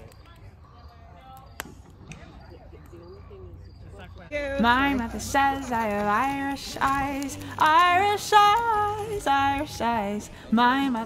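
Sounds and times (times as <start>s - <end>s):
faint voices: 0.0s - 11.0s
wood fire popping: 4.6s - 9.8s.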